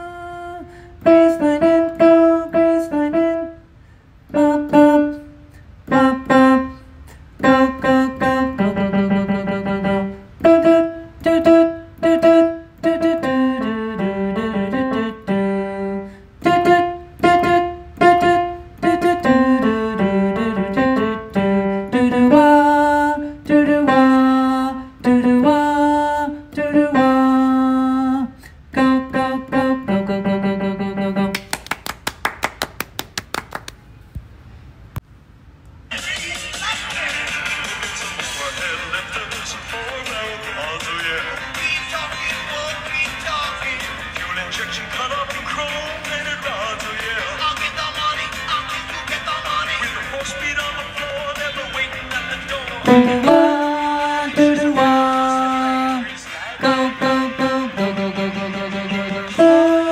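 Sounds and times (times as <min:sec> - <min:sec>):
piano playing single notes: 0:52.9 - 0:56.0, 0:56.6 - 0:59.9.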